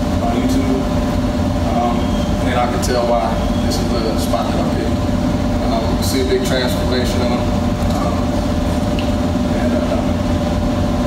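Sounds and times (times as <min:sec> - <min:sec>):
large fan humming: 0:00.0 - 0:11.0.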